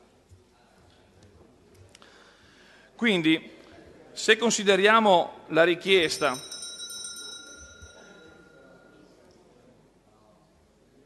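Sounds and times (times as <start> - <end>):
metallic ring: 6.0 - 9.2.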